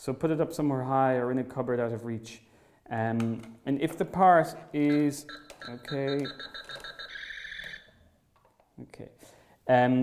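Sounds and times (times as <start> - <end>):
held electronic tone: 4.8 - 8.0
quick electronic beeps: 4.9 - 7.9.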